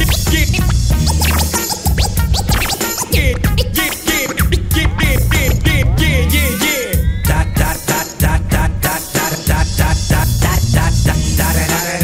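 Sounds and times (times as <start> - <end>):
heavy bass line: 0.0 - 11.8
dj scratching: 0.0 - 12.0
hip hop beat: 0.0 - 12.0.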